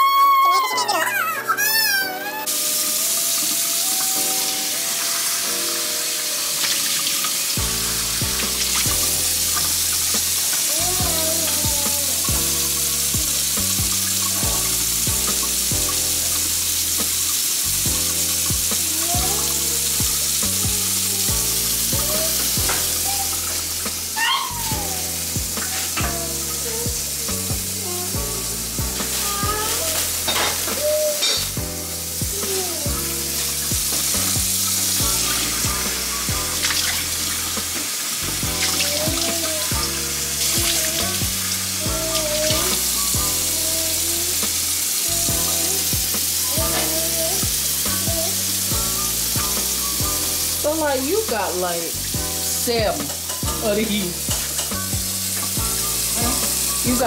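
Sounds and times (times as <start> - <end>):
background music with singing: 7.6 - 57.0.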